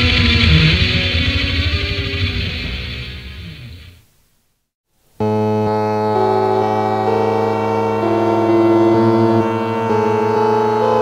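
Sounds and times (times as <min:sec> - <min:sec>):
steady low drone: 0:00.0 - 0:04.0
keyboard synthesizer held notes: 0:05.2 - 0:11.0.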